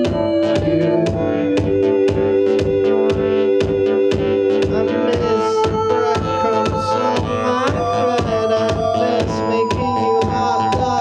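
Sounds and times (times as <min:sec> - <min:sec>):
electronic music with steady beat: 0:00.0 - 0:11.0
sliding synthesizer tones: 0:00.0 - 0:11.0.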